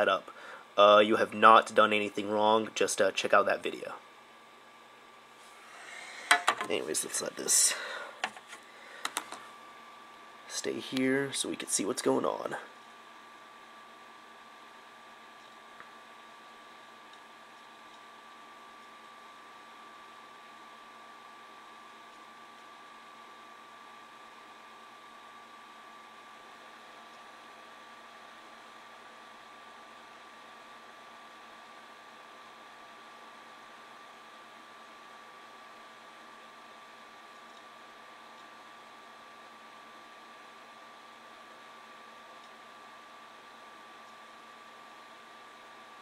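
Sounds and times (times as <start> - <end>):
thin steady whine: 0.0 - 46.0.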